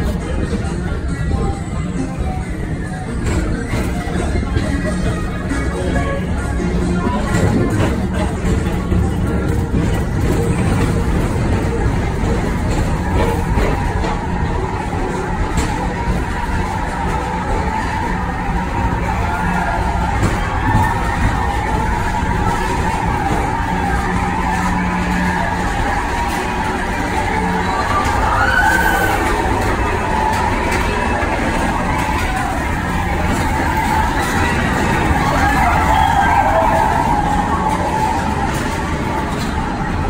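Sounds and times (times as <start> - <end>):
ride vehicles rumbling on track: 0.0 - 40.0.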